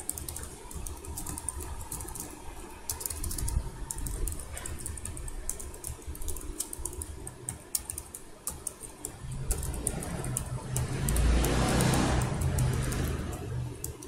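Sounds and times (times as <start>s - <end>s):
typing on computer keyboard: 0.0s - 14.0s.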